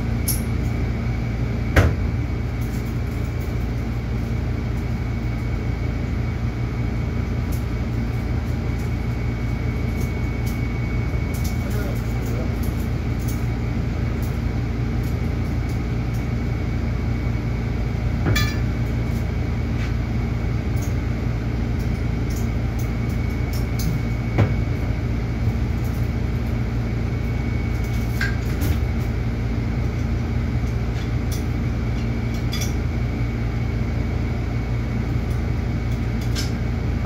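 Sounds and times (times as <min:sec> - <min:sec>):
low mechanical hum: 0:00.0 - 0:37.0
metal handles and chain clinking: 0:18.3 - 0:19.2.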